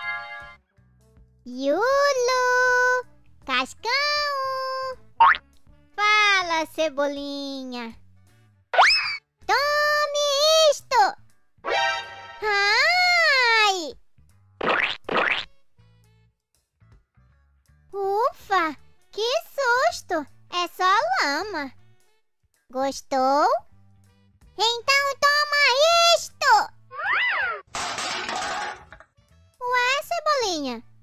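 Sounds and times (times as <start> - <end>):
faint background music: 0.0 - 14.6, 15.4 - 26.9, 27.8 - 31.0
cartoon cry of pain: 26.9 - 27.7
clattering crash of junk: 27.7 - 29.1.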